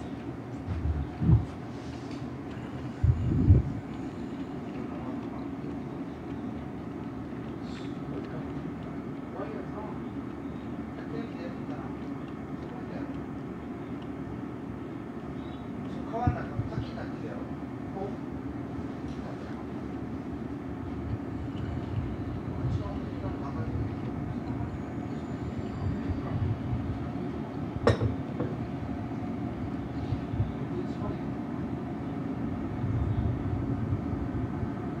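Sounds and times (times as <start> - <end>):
low rumble of room noise: 0.0 - 35.0.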